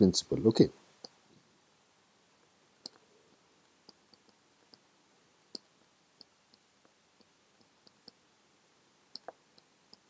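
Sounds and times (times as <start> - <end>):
stylus tapping on tablet screen: 3.7 - 4.9, 9.1 - 10.0.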